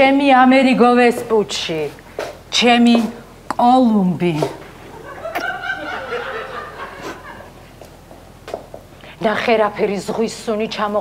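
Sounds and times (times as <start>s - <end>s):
person laughing: 4.9s - 7.6s.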